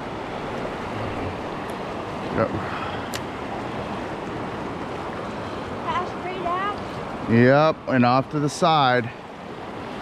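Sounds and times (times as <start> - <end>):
stream water running: 0.0 - 10.0.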